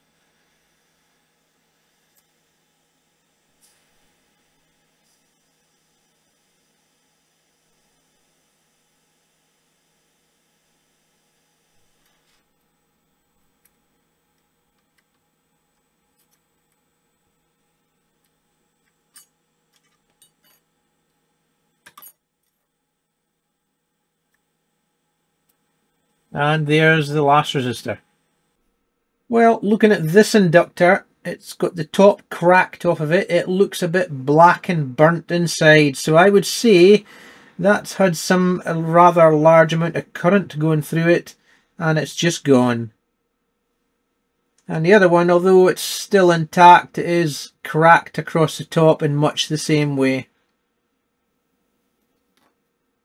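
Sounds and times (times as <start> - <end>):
faint steady hiss: 0.0 - 9.8, 25.0 - 53.0
small clicks: 2.1 - 2.3, 14.4 - 16.8, 52.0 - 52.7.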